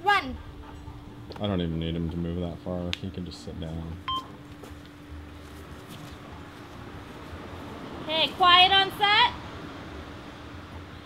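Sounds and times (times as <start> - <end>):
brief high beep: 4.1 - 4.3.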